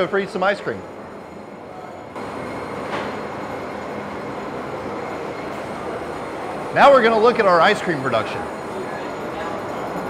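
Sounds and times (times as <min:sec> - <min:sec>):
processing machinery running: 0:00.0 - 0:10.0.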